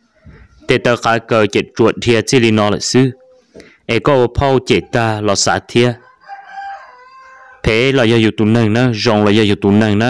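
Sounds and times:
distant rooster crowing: 0:06.0 - 0:07.8.

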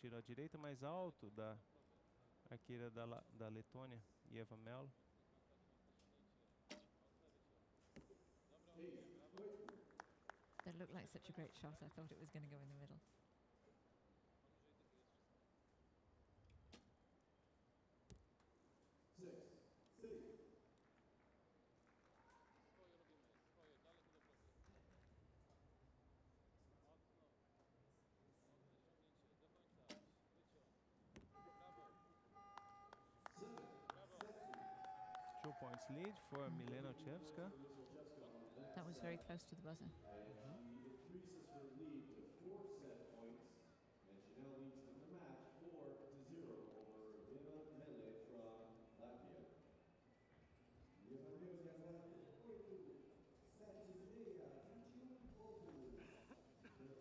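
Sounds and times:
bow string snap: 0:06.7 - 0:06.9.

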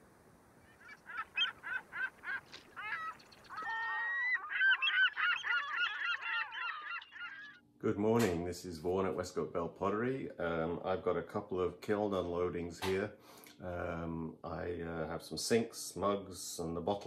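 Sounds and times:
birds calling: 0:00.6 - 0:07.7.

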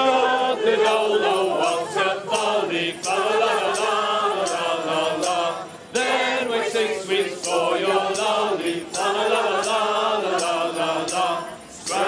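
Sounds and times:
group singing carol: 0:00.0 - 0:12.0.

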